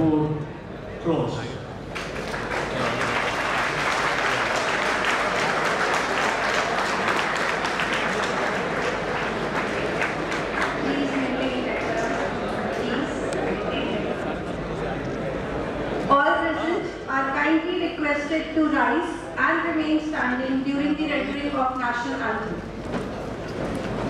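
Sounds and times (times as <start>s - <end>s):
audience applauding: 1.9s - 14.3s
voices: 2.5s - 22.6s.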